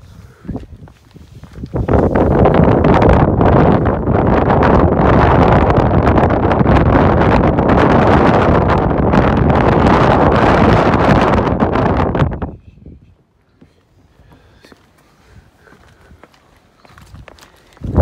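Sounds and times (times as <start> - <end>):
strong wind on microphone: 0.0 - 13.2, 16.9 - 18.0.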